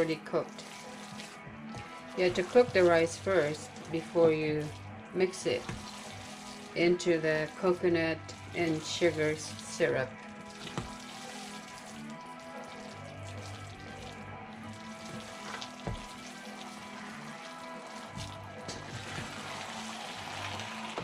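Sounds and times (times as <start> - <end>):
soft background music: 0.0 - 21.0.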